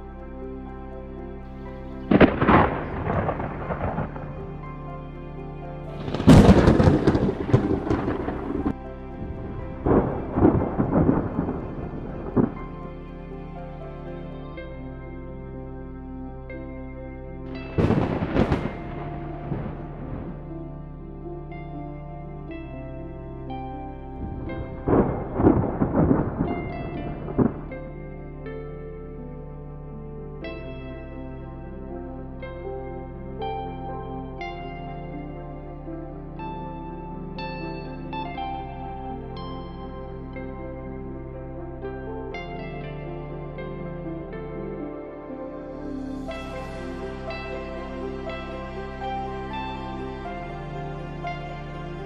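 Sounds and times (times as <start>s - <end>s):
thunderclaps rumbling: 2.1s - 4.6s, 6.0s - 12.8s, 17.5s - 20.6s, 24.2s - 27.8s.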